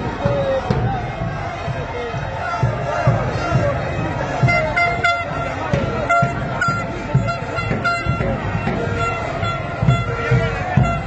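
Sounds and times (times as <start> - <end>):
drumbeat: 0.0 - 11.0
marching crowd noise: 0.0 - 11.0
horn toots: 4.3 - 11.0.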